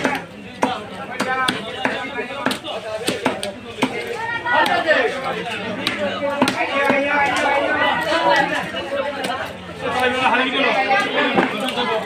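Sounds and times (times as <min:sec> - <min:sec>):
knife chopping fish on wood: 0:00.0 - 0:04.8, 0:05.8 - 0:07.1.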